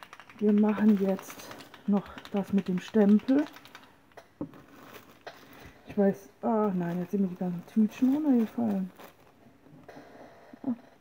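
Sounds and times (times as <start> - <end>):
plastic bags clicking: 0.0 - 9.4
soft rustle: 4.5 - 9.5.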